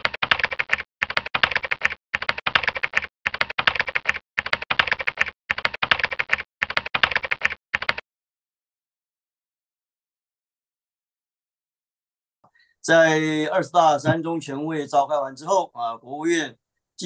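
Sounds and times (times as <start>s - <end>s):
rapid keyboard typing: 0.0s - 8.0s.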